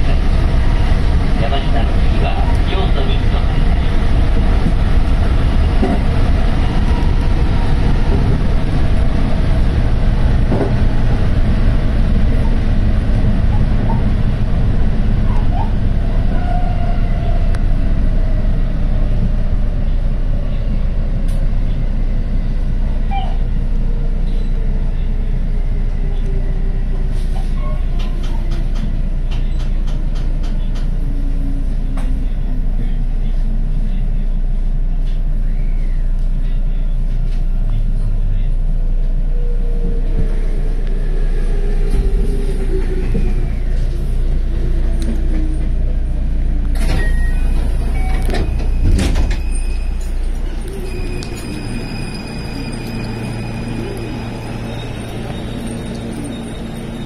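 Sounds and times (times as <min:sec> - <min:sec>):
train wheels rumbling on rail: 0:00.0 - 0:57.0
traction motor whine: 0:46.7 - 0:57.0.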